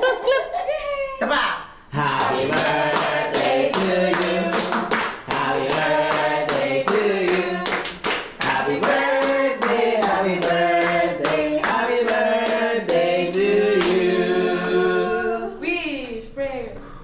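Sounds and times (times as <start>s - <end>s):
group singing together: 1.9s - 15.6s
group clapping in time: 2.0s - 14.0s.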